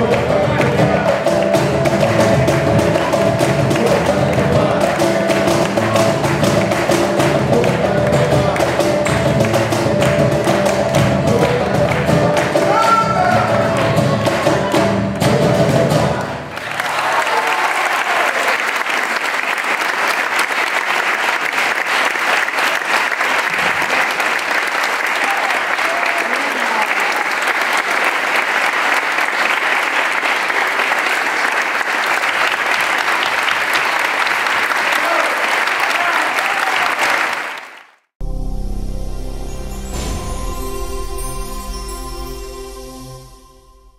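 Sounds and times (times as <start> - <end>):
cajones and acoustic guitar: 0.0 - 16.4
audience applauding: 0.0 - 38.1.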